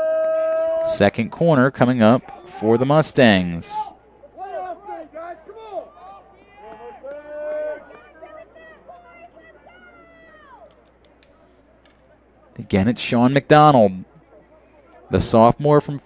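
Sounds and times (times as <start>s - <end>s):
distant voices shouting: 0.0s - 10.8s.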